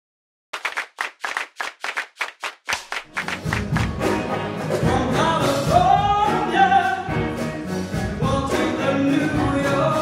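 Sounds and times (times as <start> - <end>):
sharp claps in steady rhythm: 0.5 - 4.2.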